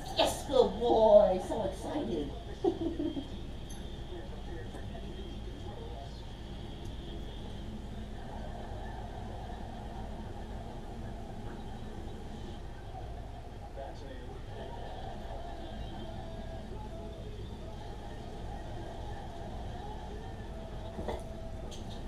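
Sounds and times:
muffled television voices: 0.0s - 22.0s
steady low hum: 0.0s - 22.0s.

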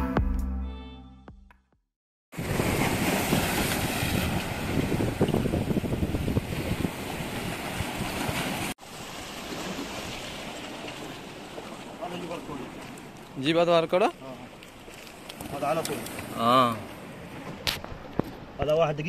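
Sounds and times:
wind buffeting microphone: 2.4s - 8.7s
sea waves washing on rocky shore: 2.4s - 18.6s.

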